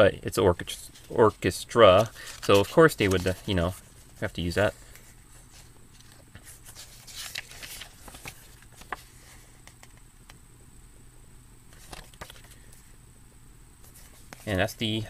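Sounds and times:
low steady hum: 0:00.0 - 0:15.0
paper pages turning: 0:00.6 - 0:10.0, 0:11.7 - 0:12.7, 0:13.8 - 0:14.8.

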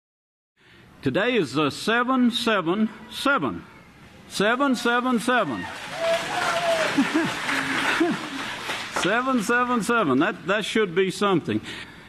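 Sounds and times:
audience applauding: 0:04.7 - 0:09.9.

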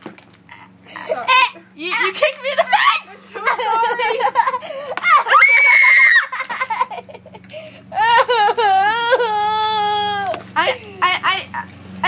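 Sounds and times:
girl screaming high-pitched: 0:05.0 - 0:06.4
girl making wordless vocal sounds: 0:07.9 - 0:11.7.

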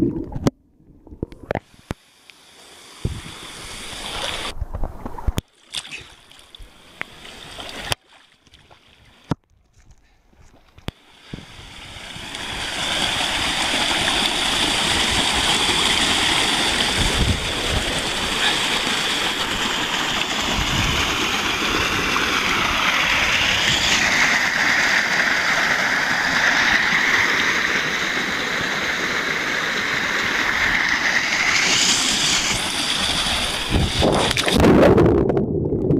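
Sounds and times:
stream water rushing: 0:02.0 - 0:04.6, 0:10.9 - 0:34.6.

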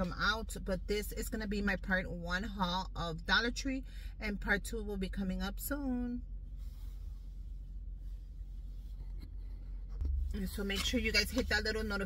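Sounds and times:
car cabin rumble: 0:04.4 - 0:12.0.

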